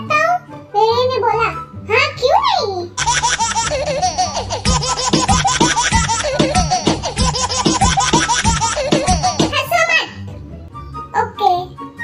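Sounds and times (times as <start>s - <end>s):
giggling laughter: 3.0s - 9.5s.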